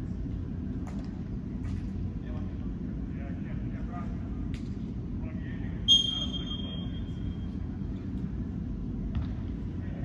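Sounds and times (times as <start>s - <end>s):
steady low rumble: 0.0s - 5.9s, 6.8s - 10.0s.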